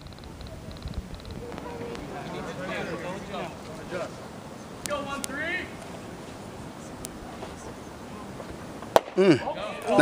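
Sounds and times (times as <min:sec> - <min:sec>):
outdoor background noise: 0:00.0 - 0:10.0.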